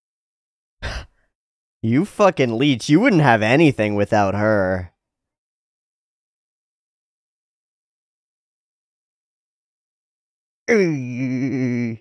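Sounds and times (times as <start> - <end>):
man speaking: 1.8 - 4.9.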